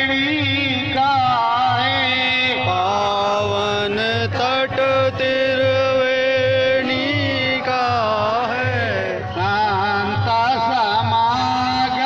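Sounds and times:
man singing a chant: 0:00.0 - 0:12.0.

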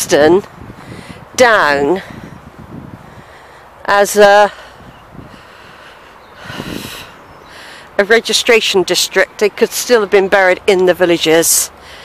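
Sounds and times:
breathy exhale or sniff: 0:04.7 - 0:07.9.

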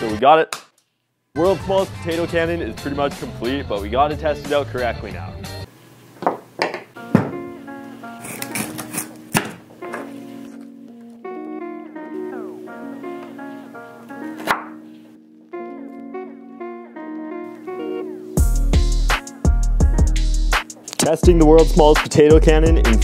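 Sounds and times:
guitar-led music: 0:07.0 - 0:23.0.

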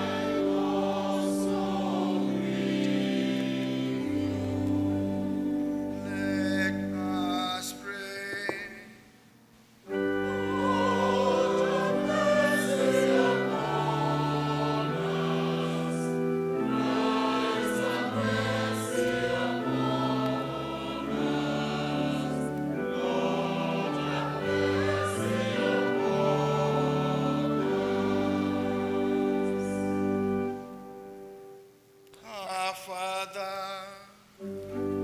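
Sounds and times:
church choir singing: 0:00.0 - 0:08.8, 0:09.8 - 0:31.6, 0:32.2 - 0:35.0
organ chords: 0:00.0 - 0:09.1, 0:09.8 - 0:32.6, 0:34.4 - 0:35.0.

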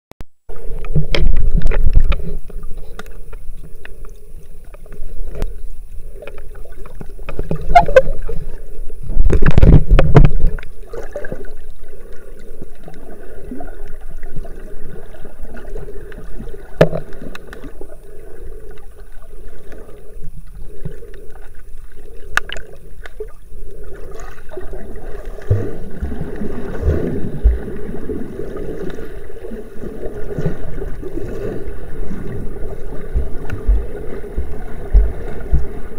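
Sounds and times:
low wavering hum: 0:10.6 - 0:35.9.

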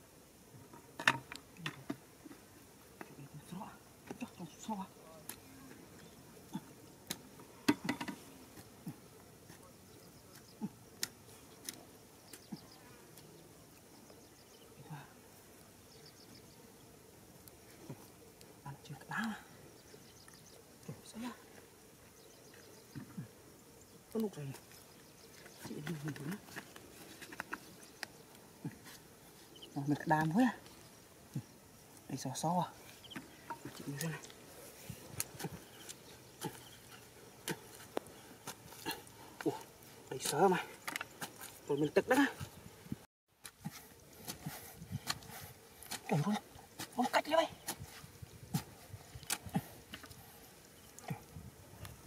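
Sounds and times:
faint insect buzz: 0:00.0 - 0:52.0.

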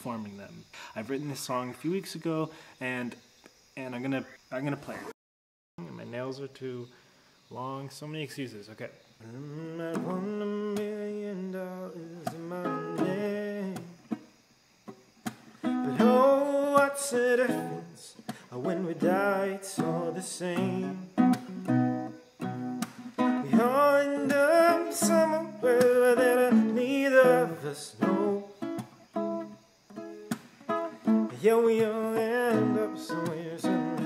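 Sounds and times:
man singing: 0:09.2 - 0:14.0, 0:15.8 - 0:21.4, 0:23.4 - 0:28.6, 0:31.3 - 0:34.0
acoustic guitar: 0:09.2 - 0:34.0.

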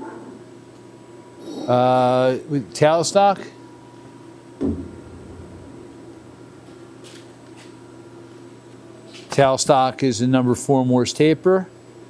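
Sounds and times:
machine hum: 0:03.7 - 0:09.1
dull knock: 0:04.6 - 0:06.0.

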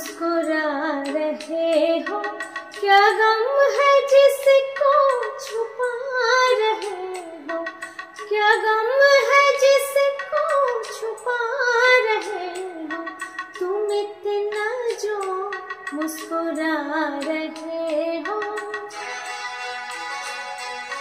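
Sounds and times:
woman singing ornamented melody: 0:00.0 - 0:19.2.

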